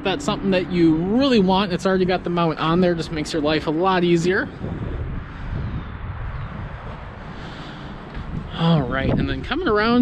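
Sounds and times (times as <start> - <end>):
strong wind on microphone: 0.3 - 10.0.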